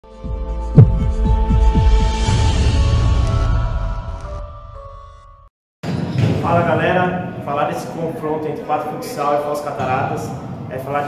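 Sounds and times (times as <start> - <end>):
music: 0.0 - 5.5
deep hit: 0.8 - 2.7.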